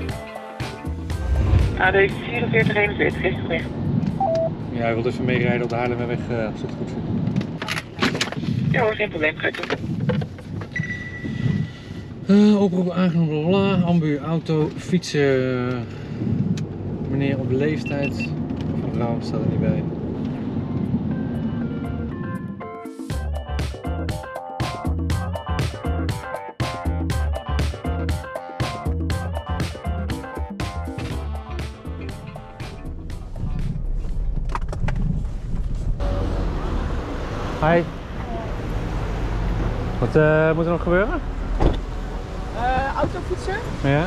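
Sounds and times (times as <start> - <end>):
background music: 0.0 - 5.2, 20.6 - 34.1
street traffic noise: 0.0 - 26.3, 26.9 - 44.0
car cabin road rumble: 0.9 - 22.6, 32.0 - 44.0.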